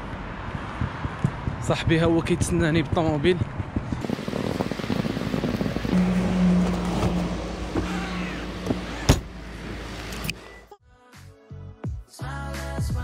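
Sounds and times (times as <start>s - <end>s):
car hum with whining tone: 4.0s - 10.7s.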